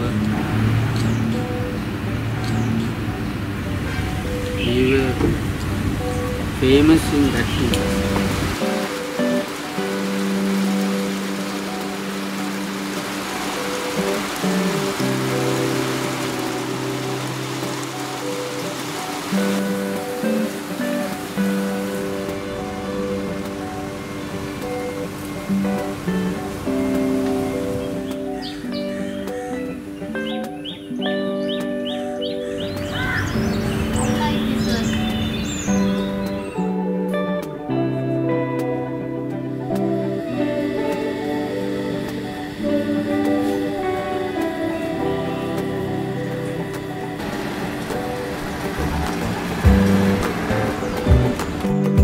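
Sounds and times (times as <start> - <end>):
instrumental background music: 0.0 - 52.0
steady hiss: 4.2 - 30.5.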